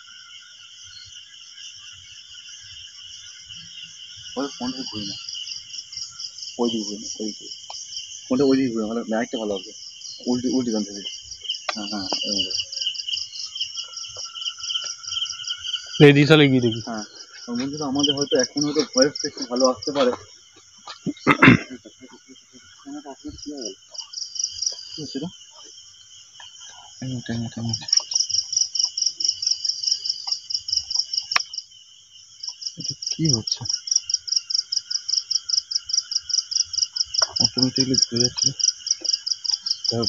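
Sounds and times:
crickets chirping: 0:00.0 - 0:40.0
high insect trill: 0:00.0 - 0:40.0.

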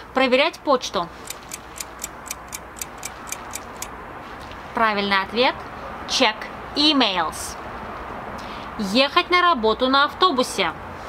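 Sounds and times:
timer ticking: 0:01.2 - 0:03.9.

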